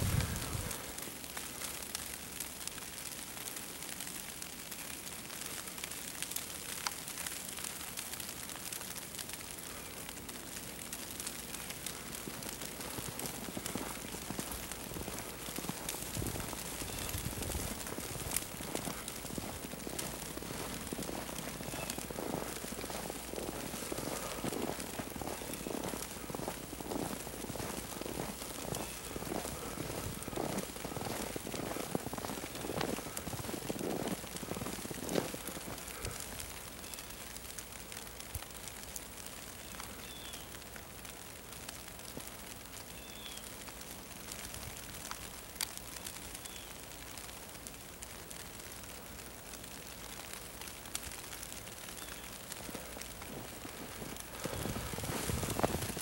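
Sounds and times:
footsteps in snow: 0.0s - 1.9s, 11.0s - 37.0s, 52.0s - 56.0s
faint steady hiss: 0.0s - 56.0s.

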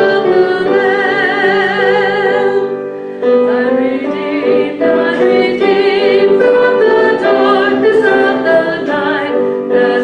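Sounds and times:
woman singing into a microphone: 0.0s - 2.8s, 3.4s - 10.0s.

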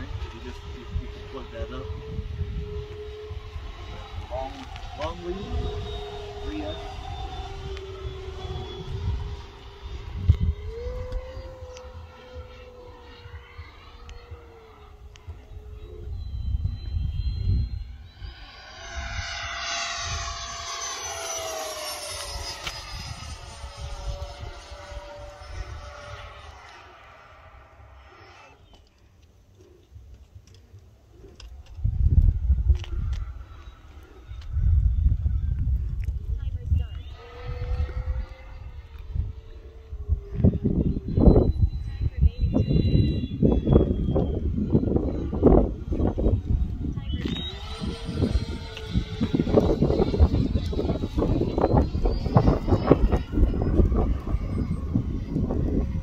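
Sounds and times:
wind noise on microphone: 0.0s - 27.7s, 31.2s - 56.0s
model jet fan whine: 0.0s - 56.0s.

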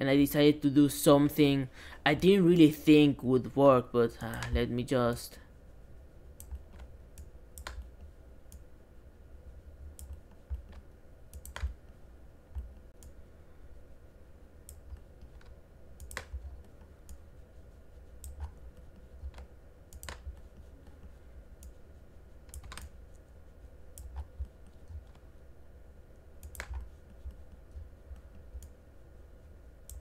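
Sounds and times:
faint low rumble: 0.0s - 30.0s
computer mouse and keyboard clicks: 4.2s - 4.7s, 6.4s - 8.7s, 9.9s - 13.2s, 14.6s - 17.2s, 18.2s - 21.8s, 22.4s - 23.3s, 23.9s - 25.3s, 26.4s - 28.8s.

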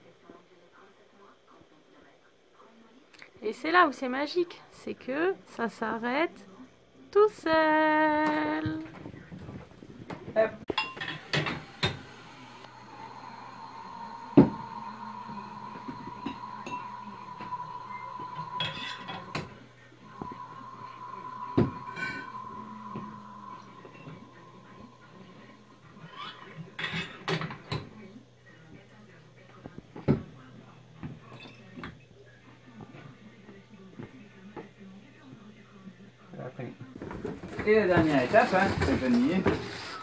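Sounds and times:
steady high whine: 8.9s - 28.0s
glass bottles clinking: 10.7s - 12.2s
low hum: 10.7s - 28.0s.

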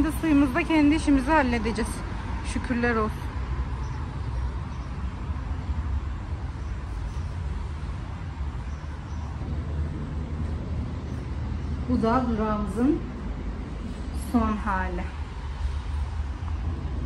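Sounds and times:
distant street traffic rumble: 0.0s - 17.0s.

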